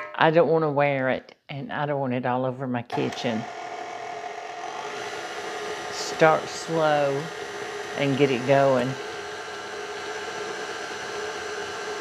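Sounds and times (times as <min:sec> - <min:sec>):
electric stand mixer running: 0:02.9 - 0:12.0.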